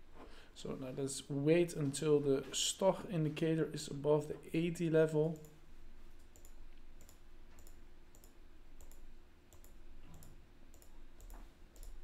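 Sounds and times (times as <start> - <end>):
faint steady hum: 0.0 - 12.0
computer mouse clicking: 6.2 - 12.0.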